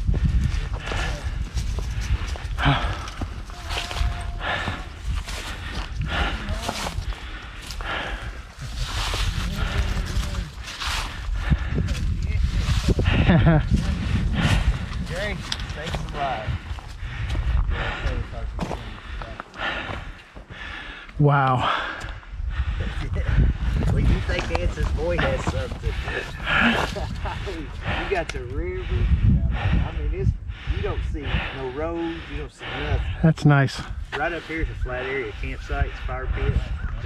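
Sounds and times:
footsteps crunching on dirt trail: 0:00.0 - 0:21.2, 0:22.8 - 0:28.3
wind rumbling on microphone: 0:00.0 - 0:37.0
indistinct voices: 0:02.3 - 0:10.7.

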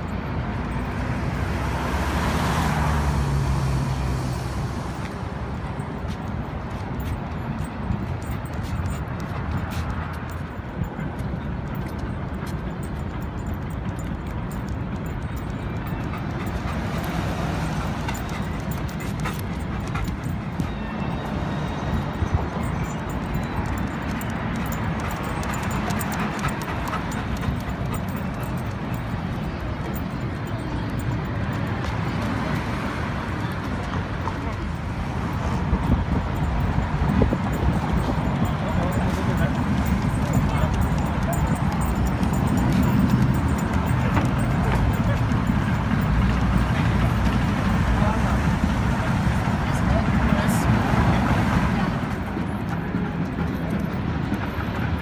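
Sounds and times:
city traffic: 0:00.0 - 0:55.0
distant voices: 0:00.0 - 0:55.0.

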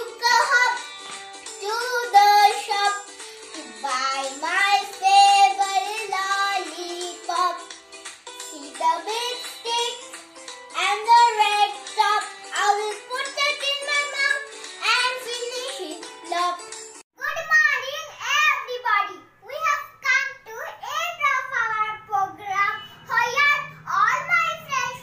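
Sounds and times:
child singing: 0:00.0 - 0:01.0, 0:01.6 - 0:07.7, 0:08.5 - 0:16.6, 0:17.2 - 0:25.0
instrumental backing music: 0:00.0 - 0:17.0.

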